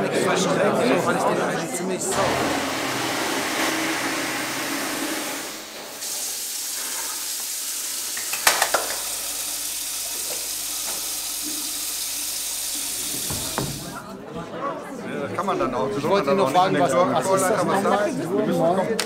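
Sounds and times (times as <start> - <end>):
tap water running into basin: 2.1 - 14.0.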